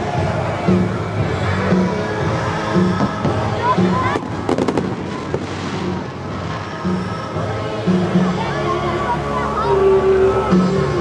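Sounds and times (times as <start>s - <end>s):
background music: 0.0s - 11.0s
fireworks cracking: 3.0s - 6.9s.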